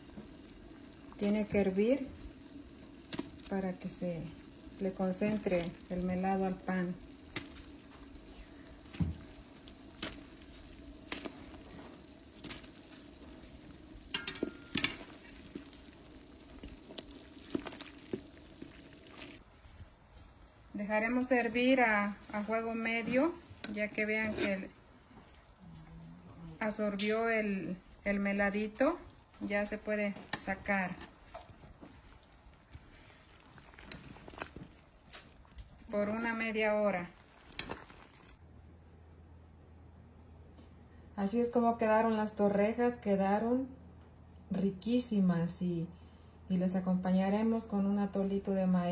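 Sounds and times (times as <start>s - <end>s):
syrup bubbling in a pot: 0.0s - 38.4s
metal spoon clinking against pot: 14.1s - 15.1s.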